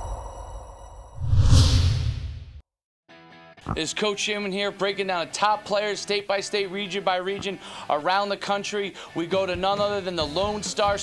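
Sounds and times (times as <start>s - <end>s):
whoosh sound effect: 1.2s - 2.5s.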